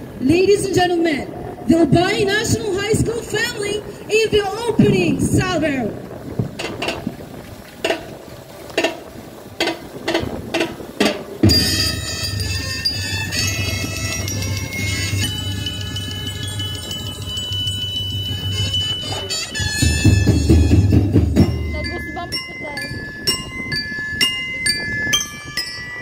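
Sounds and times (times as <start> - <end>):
ringing chime notes: 11.4 - 26.0.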